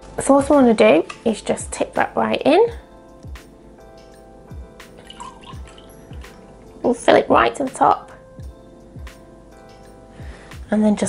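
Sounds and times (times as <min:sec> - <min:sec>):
background music with soft beat: 0:00.0 - 0:11.0
liquid glaze trickling and splashing: 0:04.9 - 0:06.9.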